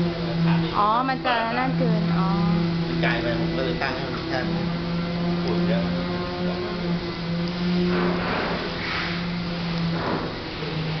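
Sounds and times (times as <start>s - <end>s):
sliding door motor humming: 0.0s - 11.0s.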